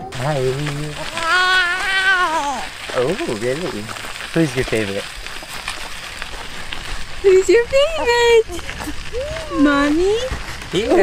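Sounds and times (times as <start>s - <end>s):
infant cooing: 0.0s - 2.7s.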